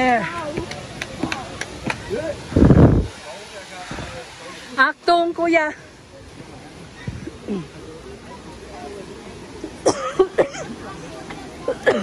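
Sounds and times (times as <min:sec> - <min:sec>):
people talking: 0:00.0 - 0:12.0
steady background hiss: 0:00.0 - 0:12.0.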